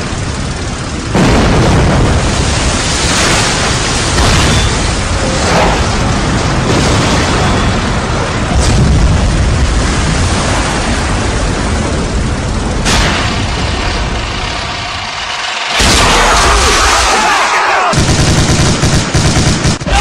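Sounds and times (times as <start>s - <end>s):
low rumble of explosions: 0.0s - 20.0s
machine-gun fire: 12.8s - 17.3s, 17.9s - 20.0s.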